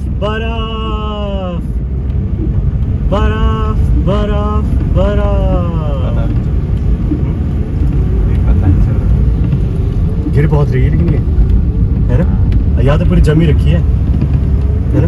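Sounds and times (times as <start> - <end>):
car driving on wet road: 0.0 - 15.0.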